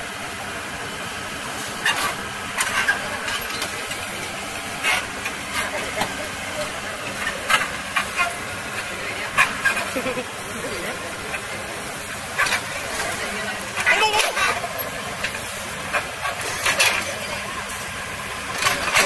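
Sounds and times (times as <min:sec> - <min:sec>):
excavator diesel engine running: 0:00.0 - 0:19.0.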